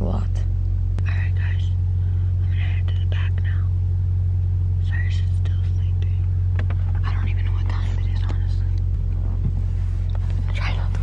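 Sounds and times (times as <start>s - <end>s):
low hum in car cabin: 0.0s - 11.0s
woman whispering: 1.0s - 1.8s, 2.4s - 3.7s, 4.8s - 6.3s, 6.9s - 8.8s, 10.4s - 11.0s.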